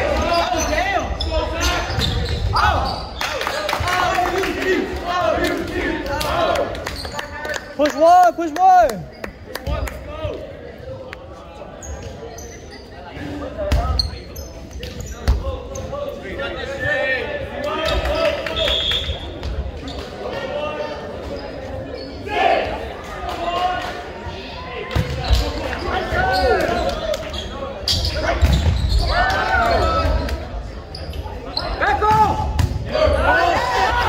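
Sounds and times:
sneakers squeaking on floor: 0.0 - 3.3, 6.9 - 7.3, 11.6 - 16.2, 21.1 - 22.5, 25.0 - 32.8
players chatter echoing: 0.0 - 34.0.

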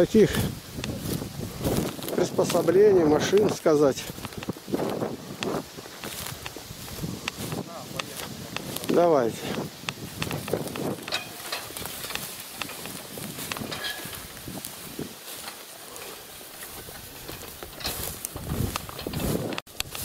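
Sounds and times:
footsteps in tall grass: 0.0 - 20.0
small clicks and knocks: 3.3 - 4.6, 7.2 - 14.3, 15.4 - 20.0.

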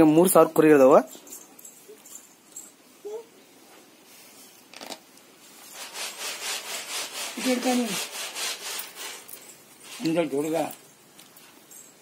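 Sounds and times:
cloth rubbing strokes: 5.3 - 11.8.

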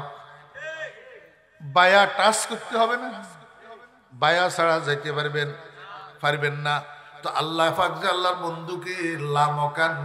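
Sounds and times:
man chanting through microphone: 0.0 - 10.0.

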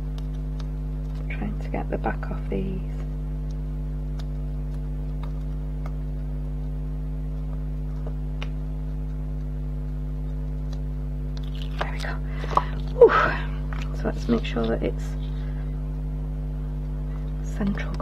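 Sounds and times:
steady low hum: 0.0 - 18.0
card rustling: 11.4 - 15.6.

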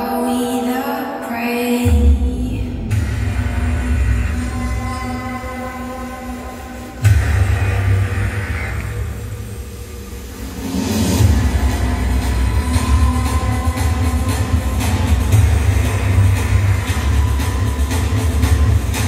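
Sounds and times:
bass-heavy music over loudspeakers: 0.0 - 19.0.

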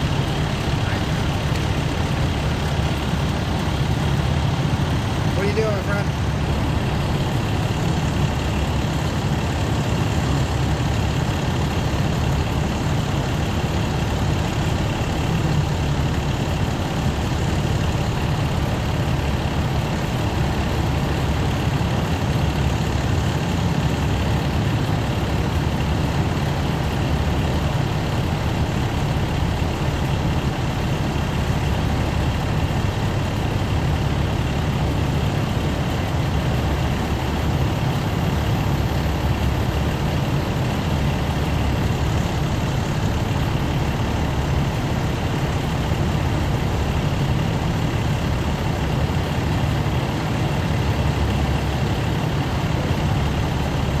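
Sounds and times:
diesel engine running: 0.0 - 54.0.

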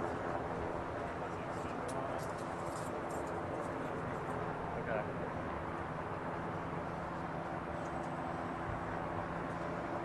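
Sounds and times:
distant traffic: 0.0 - 10.0.

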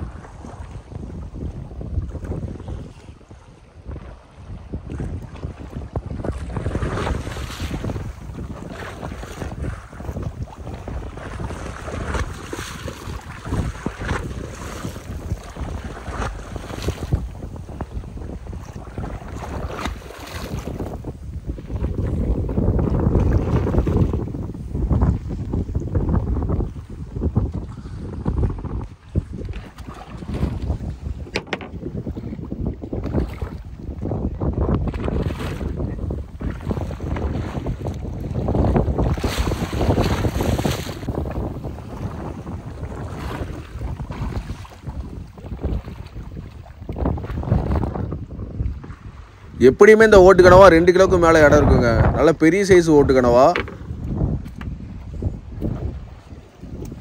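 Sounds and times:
sea water washing around boat: 0.0 - 57.0
wind buffeting microphone: 0.0 - 57.0.

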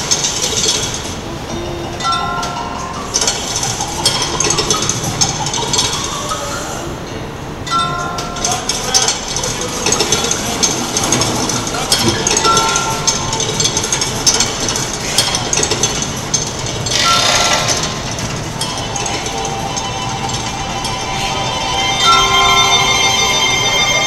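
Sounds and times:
mechanical clock clanks and knocks: 0.0 - 1.2, 2.0 - 6.3, 7.7 - 21.2
short chiming notes: 18.6 - 24.0.

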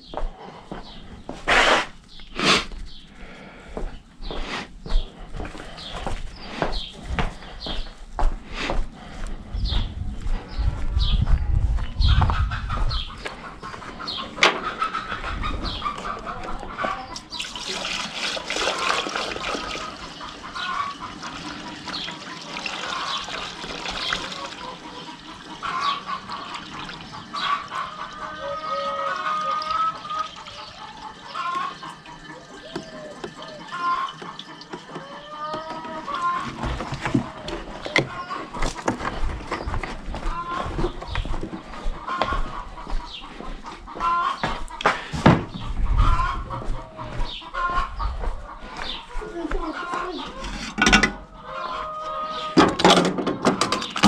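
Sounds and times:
chickens clucking: 0.0 - 54.0
fuel glugging through funnel: 29.5 - 38.1.

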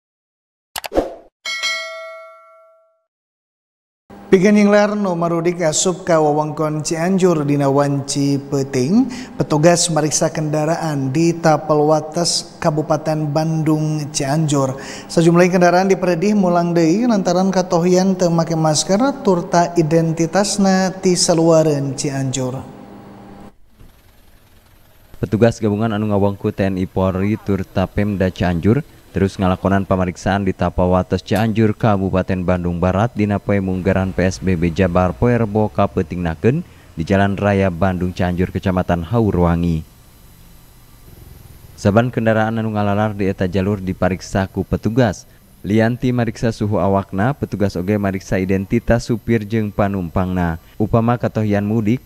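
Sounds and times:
notification bell ding: 1.5 - 3.1.

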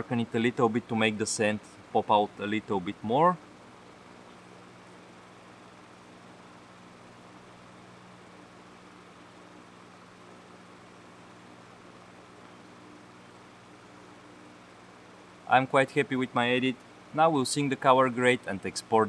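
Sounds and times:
electric fan running: 0.0 - 19.0.

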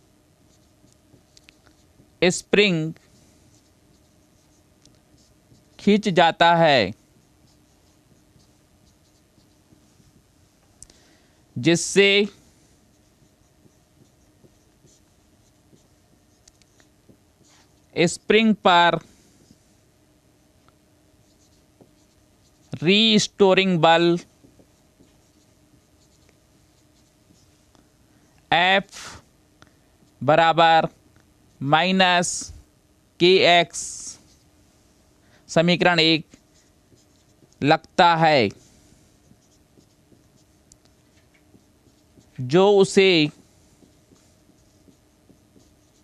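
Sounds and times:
faint steady hum: 0.0 - 46.0
marker pen scratching on whiteboard: 0.4 - 10.3, 11.7 - 19.6, 21.2 - 27.6, 35.6 - 46.0.

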